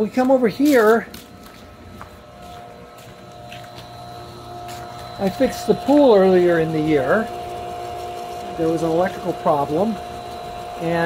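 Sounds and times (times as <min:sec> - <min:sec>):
pool pump motor hum and whine: 0:00.0 - 0:11.0.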